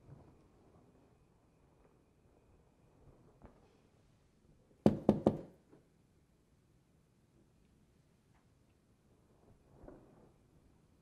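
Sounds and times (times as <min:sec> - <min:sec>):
knocks on a wall: 0:04.9 - 0:05.6.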